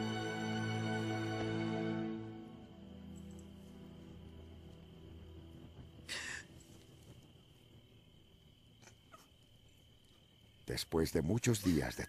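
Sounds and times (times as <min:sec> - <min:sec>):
crickets chirring: 0:00.0 - 0:12.0
soft film score music: 0:00.0 - 0:12.0.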